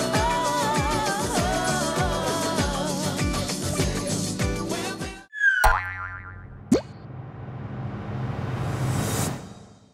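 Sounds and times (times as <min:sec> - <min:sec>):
falling wobbling boing: 0:05.4 - 0:07.0.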